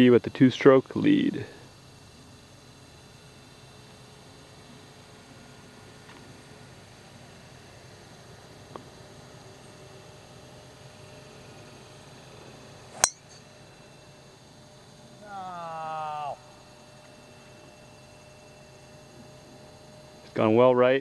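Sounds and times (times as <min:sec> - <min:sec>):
golf club striking ball: 0:13.0 - 0:13.4.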